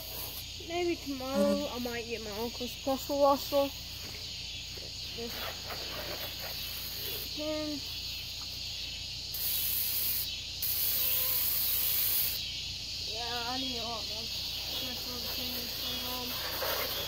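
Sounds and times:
garden hose spraying water: 0.0s - 17.0s.

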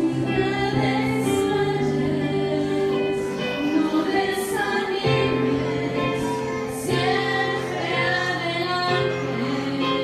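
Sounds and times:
women singing worship song: 0.0s - 10.0s.

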